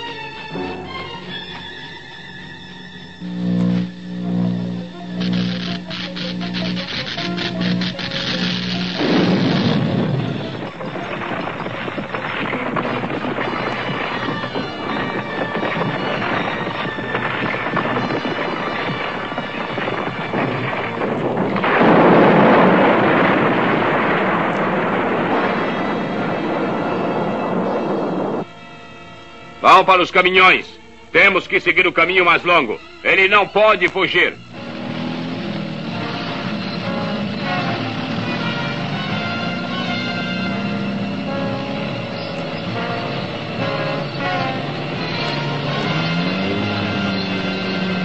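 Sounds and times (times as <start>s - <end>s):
cartoon background music: 0.0s - 3.2s, 25.5s - 48.0s
dense rumbling noise: 3.2s - 28.5s, 34.4s - 48.0s.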